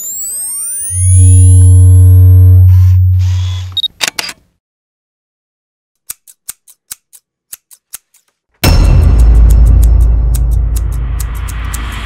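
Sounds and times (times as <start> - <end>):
deep bass tone: 8.6 - 12.0
rising whooshing pitch sweeps: 10.3 - 12.0.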